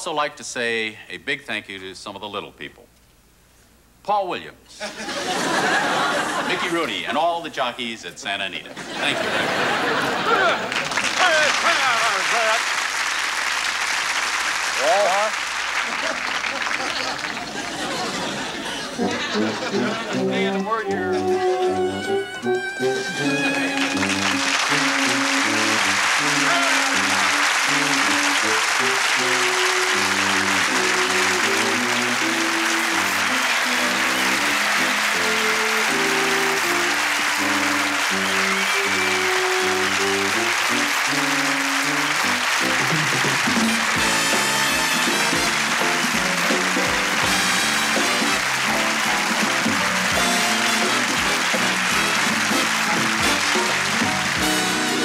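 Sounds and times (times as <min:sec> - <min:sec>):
audience applauding: 0:05.1 - 0:07.0, 0:08.8 - 0:55.0
band playing music: 0:18.9 - 0:55.0
steady drumbeat: 0:23.4 - 0:55.0.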